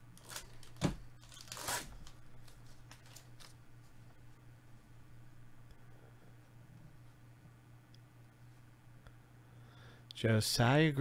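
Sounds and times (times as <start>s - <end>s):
foil wrapper crinkling and tearing: 0.2s - 3.6s.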